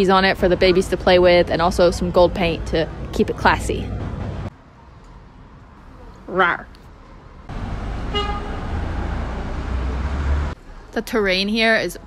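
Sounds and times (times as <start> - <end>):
street traffic rumble: 0.0 - 12.0
vehicle horn toot: 8.1 - 8.6.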